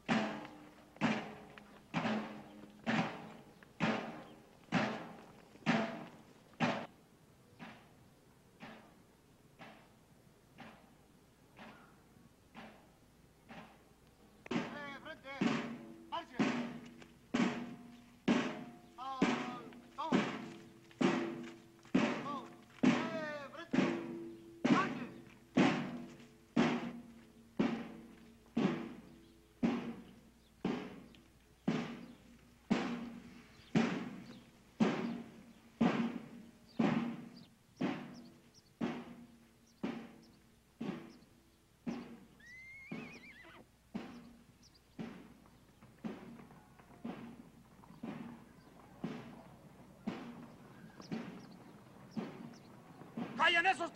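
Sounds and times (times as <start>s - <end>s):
slow steady drumbeat: 0.0s - 53.9s
horse whinnying: 42.3s - 43.7s.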